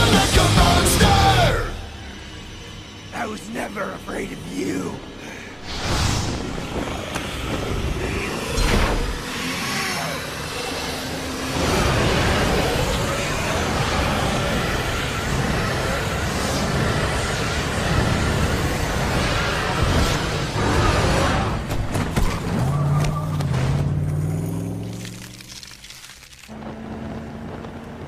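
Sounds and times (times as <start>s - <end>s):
heavy rock instrumental: 0.0s - 2.4s.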